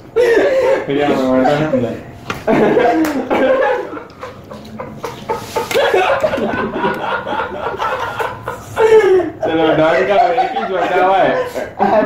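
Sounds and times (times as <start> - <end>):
men laughing: 0.0 - 12.0.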